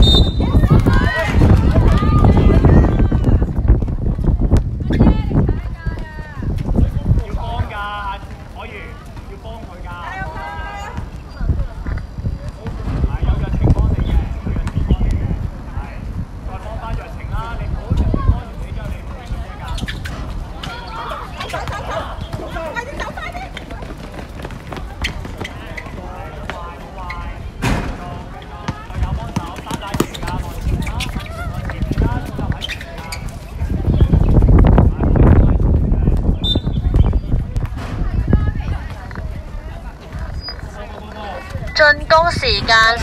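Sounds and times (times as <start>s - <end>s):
high-pitched voices calling out: 41.8s - 43.0s.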